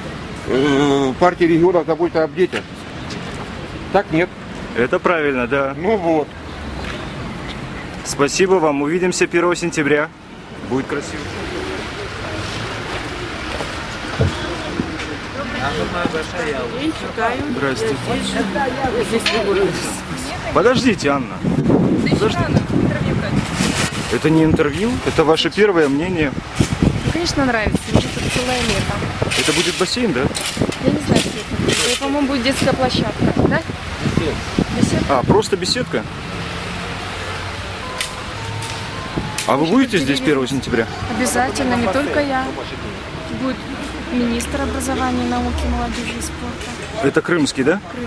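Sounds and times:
faint traffic hum: 0.0s - 48.0s
faint voices: 9.2s - 48.0s
wind on microphone: 19.7s - 25.1s, 26.1s - 35.5s.

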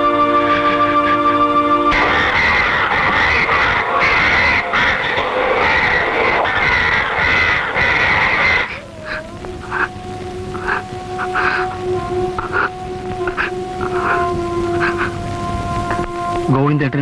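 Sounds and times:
flock of birds calling: 0.0s - 17.0s
held musical note: 8.8s - 17.0s.

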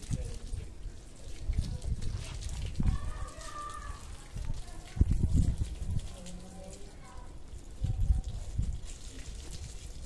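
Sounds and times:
hose water spraying and splashing: 0.0s - 10.0s.

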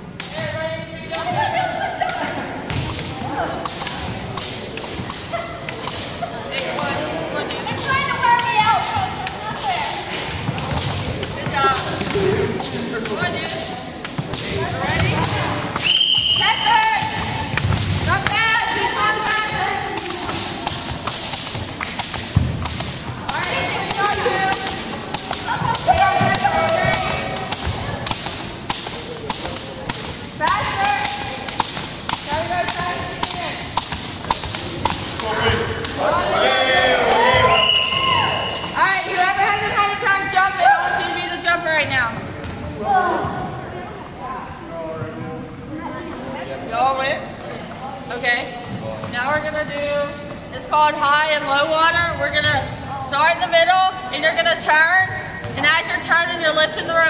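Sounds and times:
people talking: 0.3s - 21.3s, 23.1s - 38.0s, 38.6s - 57.0s
jump rope slapping wooden floor: 7.5s - 15.8s, 16.8s - 37.5s.

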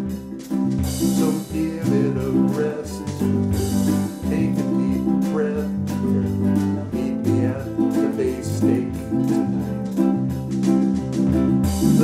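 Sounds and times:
drum hits: 0.0s - 12.0s
electric bass line: 0.0s - 12.0s
ukuleles strumming: 0.0s - 12.0s.

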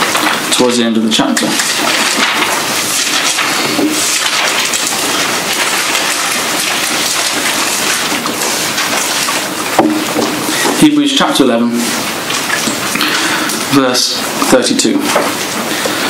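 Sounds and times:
rushing hiss with crackling: 0.0s - 16.0s.

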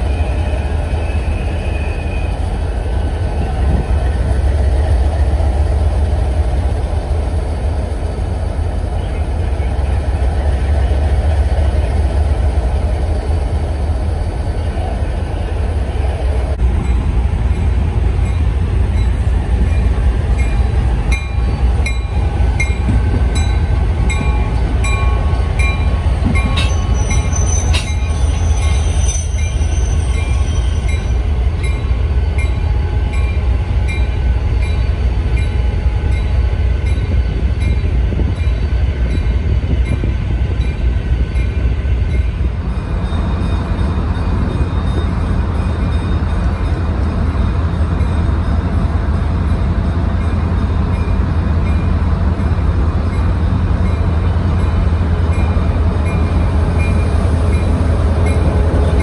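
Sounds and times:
diesel locomotives rumbling: 0.0s - 59.0s
locomotive bell ringing: 16.8s - 40.0s
wheel squeal: 26.6s - 31.0s.

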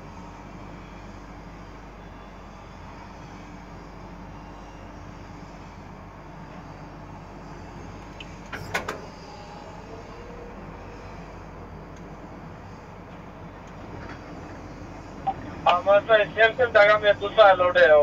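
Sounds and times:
construction noise: 0.0s - 18.0s
distant traffic: 7.2s - 18.0s.

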